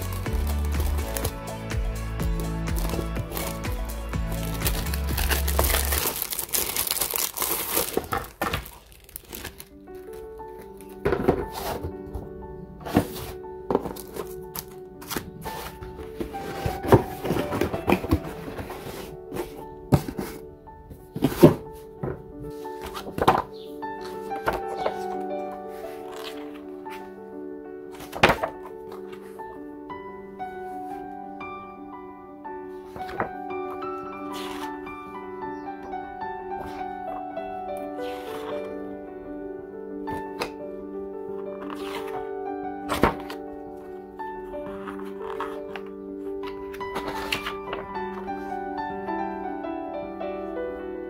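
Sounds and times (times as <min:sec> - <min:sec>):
paper page flipping: 0:00.0 - 0:01.5, 0:02.4 - 0:12.2, 0:12.8 - 0:20.4, 0:22.5 - 0:27.2, 0:27.9 - 0:29.4, 0:32.9 - 0:35.1, 0:37.9 - 0:38.8, 0:41.4 - 0:48.6
plastic wrapping crinkling: 0:00.0 - 0:01.7, 0:02.3 - 0:12.0, 0:41.4 - 0:48.6
background music with held notes: 0:00.0 - 0:51.0.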